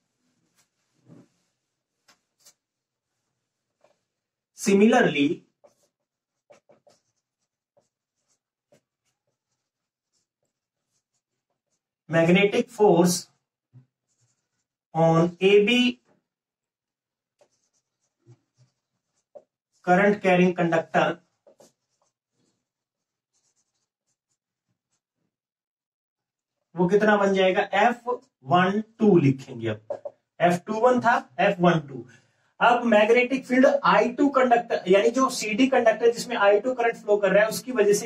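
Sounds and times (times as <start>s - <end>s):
marker strokes on whiteboard: 0.0s - 16.2s, 16.9s - 25.2s, 29.8s - 30.6s.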